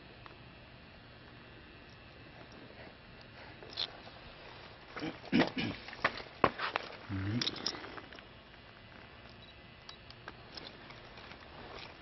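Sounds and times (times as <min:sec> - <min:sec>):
person making vocal sounds: 0:07.1 - 0:07.8.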